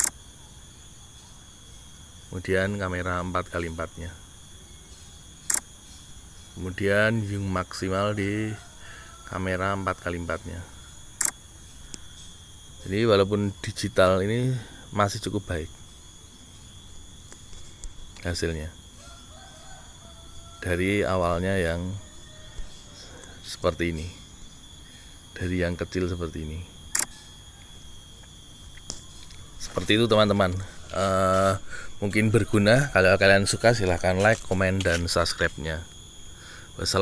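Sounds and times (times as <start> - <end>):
crickets chirring: 0.0 - 37.0
insects droning: 0.0 - 37.0
faint clicks: 11.2 - 12.2.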